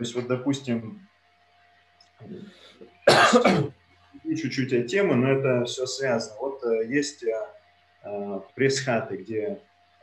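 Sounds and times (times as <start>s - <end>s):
throat sound: 2.2s - 3.7s
man coughing: 3.1s - 3.7s.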